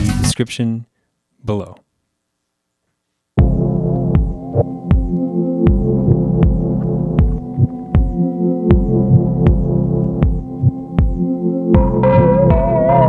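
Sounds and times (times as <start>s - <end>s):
low drum beat: 3.4s - 11.2s, 11.8s - 13.0s
synth chords and bass: 3.4s - 13.0s.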